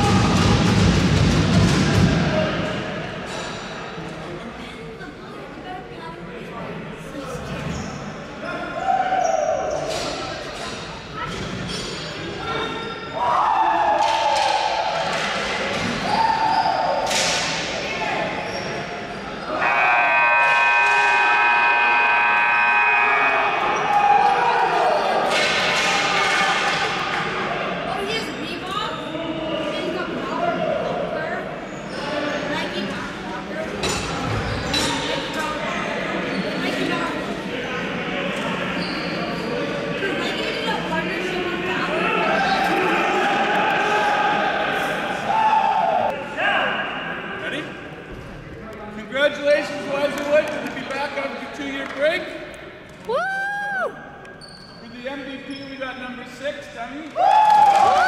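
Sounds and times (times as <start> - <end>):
players shouting and cheering: 0.0 - 3.0, 13.1 - 17.3, 19.4 - 27.8, 41.8 - 46.9, 53.0 - 54.1, 57.1 - 58.0.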